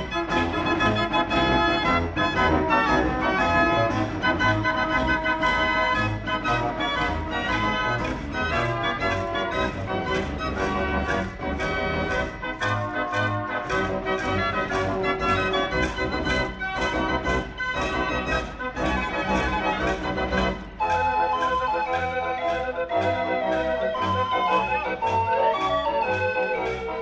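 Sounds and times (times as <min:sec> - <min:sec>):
steady percussion beat: 0:00.0 - 0:25.7
street organ playing a march: 0:00.0 - 0:27.0.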